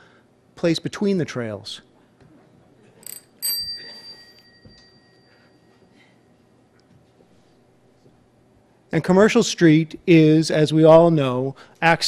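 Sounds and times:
small bell ringing: 3.0s - 5.9s.

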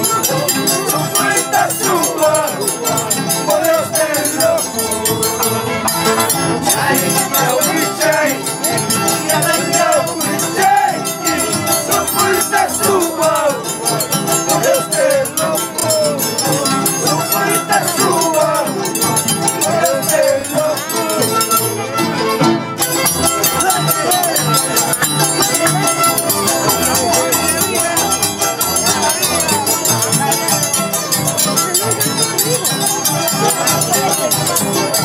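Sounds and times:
harps and violins playing: 0.0s - 34.9s.

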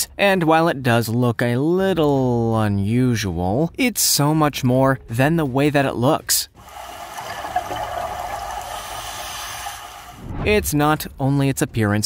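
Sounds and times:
underwater rushing water noise: 6.6s - 10.3s.

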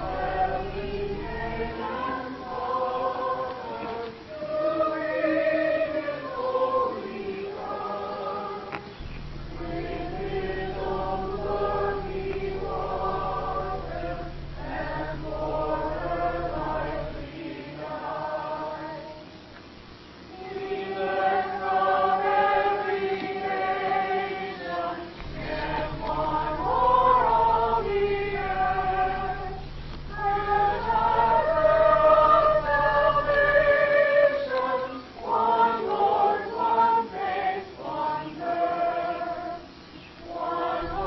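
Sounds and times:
congregation singing a hymn: 0.0s - 19.4s, 20.3s - 41.0s.

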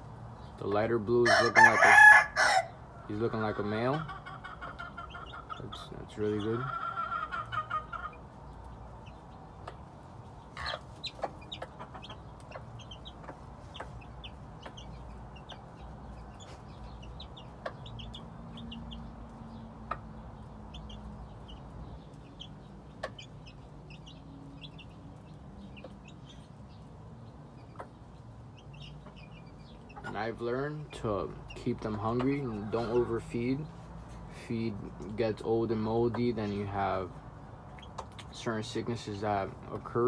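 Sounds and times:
birds tapping on ground: 0.0s - 40.0s
chicks peeping: 0.0s - 40.0s.

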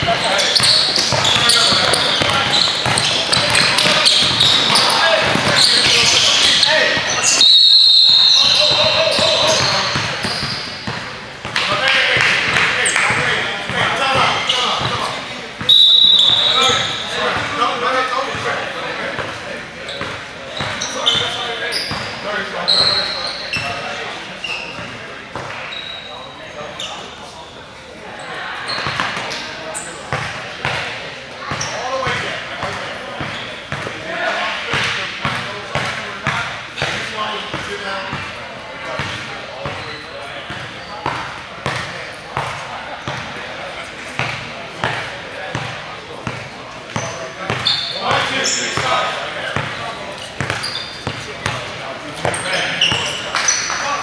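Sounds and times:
indistinct talk in a gym: 0.0s - 54.0s.

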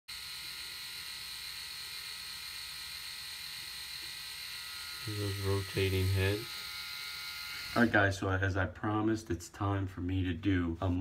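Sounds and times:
electric shaver motor hum: 0.1s - 8.1s.

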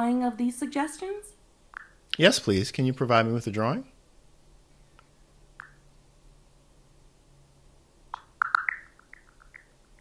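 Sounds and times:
soft bubbly app blips: 8.1s - 9.7s.

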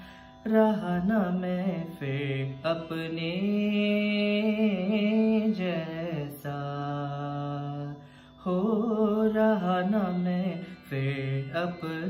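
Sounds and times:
man singing: 0.0s - 12.0s.

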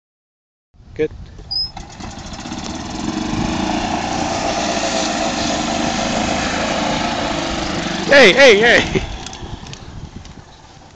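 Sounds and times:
small golf cart engine: 1.5s - 10.9s.

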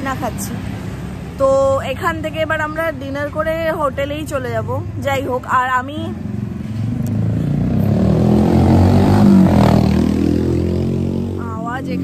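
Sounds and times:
vehicle passing by: 6.0s - 12.0s.

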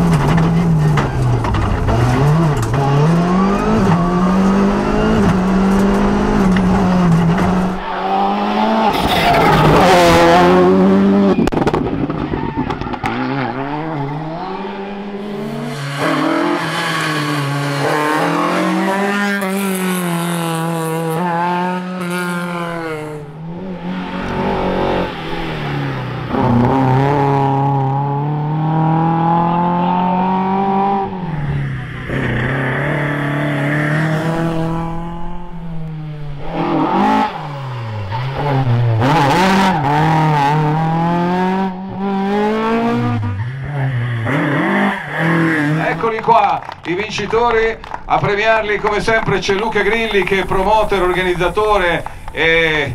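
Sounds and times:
rally car engines revving past: 0.0s - 52.9s.

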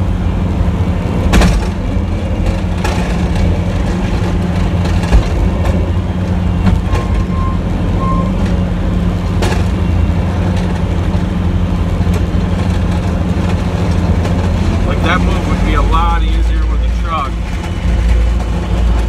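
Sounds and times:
truck engine running: 0.0s - 19.0s
short beeps: 6.4s - 8.7s
plow knocking: 9.3s - 19.0s.

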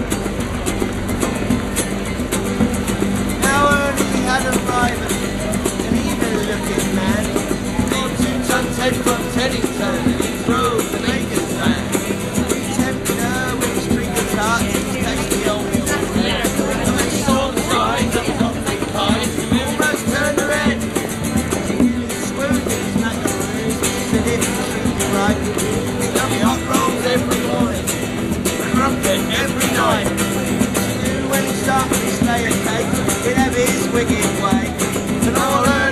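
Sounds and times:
acoustic guitars strummed: 0.0s - 35.9s
hand drum: 0.0s - 35.9s.

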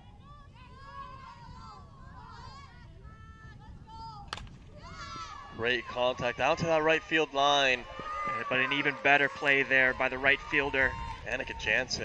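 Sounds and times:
bat striking softball: 4.3s - 4.6s
voices calling out: 4.9s - 12.0s.

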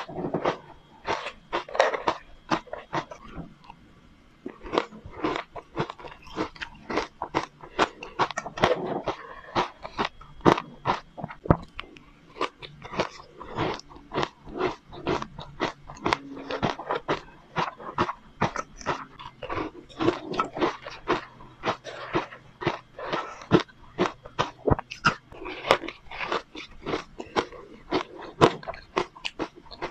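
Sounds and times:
crunching and chewing ice: 0.0s - 3.8s, 4.4s - 29.9s.

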